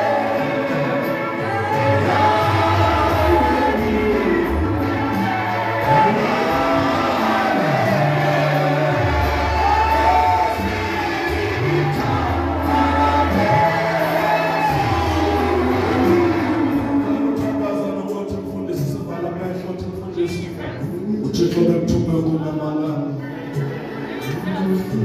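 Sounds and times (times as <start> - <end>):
group singing gospel song: 0.0 - 19.5.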